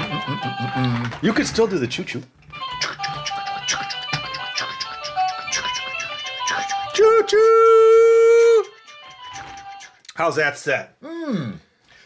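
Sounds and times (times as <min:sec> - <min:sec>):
toy train electronic tune: 0:00.0 - 0:01.0, 0:02.5 - 0:07.8, 0:08.4 - 0:10.0
toy train choo sound: 0:02.5 - 0:10.0.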